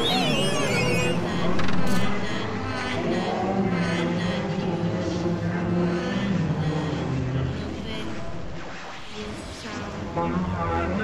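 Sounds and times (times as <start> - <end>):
overlapping soundtracks droning: 0.0 - 11.0.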